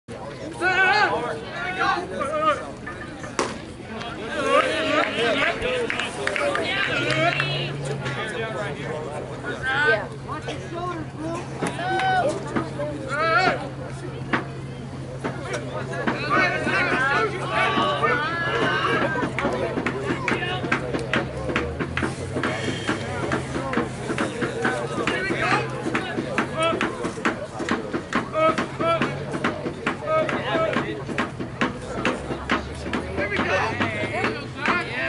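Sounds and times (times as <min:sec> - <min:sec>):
overlapping voices calling out: 0:00.2 - 0:35.0.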